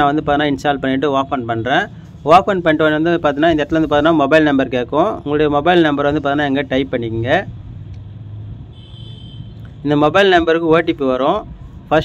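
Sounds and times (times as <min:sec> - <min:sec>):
man talking: 0:00.0 - 0:07.6, 0:09.8 - 0:12.0.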